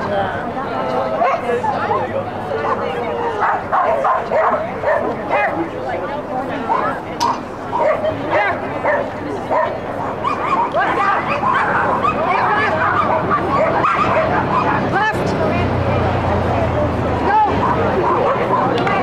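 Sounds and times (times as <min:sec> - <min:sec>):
dog barking: 0:02.6 - 0:05.6, 0:07.7 - 0:14.9, 0:17.5 - 0:19.0.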